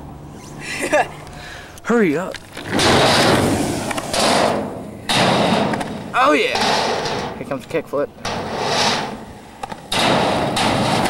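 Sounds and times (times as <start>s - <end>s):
skateboard wheels rolling on concrete: 0.0s - 11.0s.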